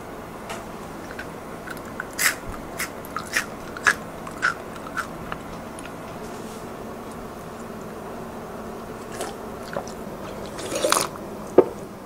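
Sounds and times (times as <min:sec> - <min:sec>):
crunchy chewing: 0:00.8 - 0:08.0, 0:08.9 - 0:11.9.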